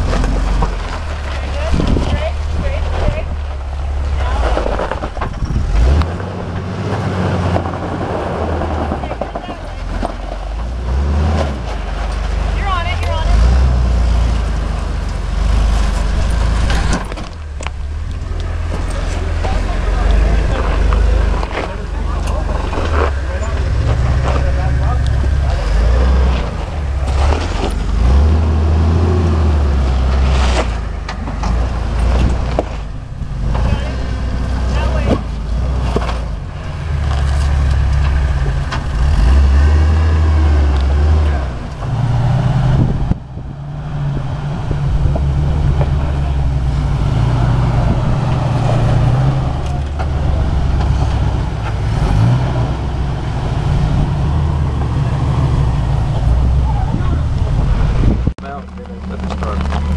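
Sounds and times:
engines at low revs: 0:00.0 - 0:59.9.

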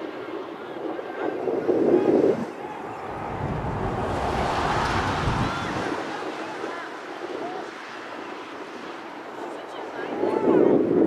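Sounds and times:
sports field ambience: 0:00.0 - 0:11.0
wind buffeting microphone: 0:00.0 - 0:11.0.

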